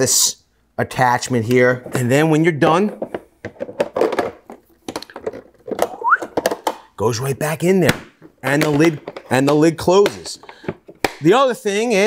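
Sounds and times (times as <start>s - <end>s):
plastic clicks and knocks: 2.9s - 6.8s, 7.9s - 11.3s.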